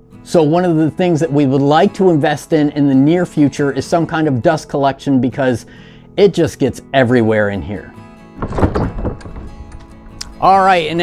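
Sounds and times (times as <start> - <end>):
guitar music: 0.0 - 11.0
wooden doors pushed open: 8.3 - 11.0.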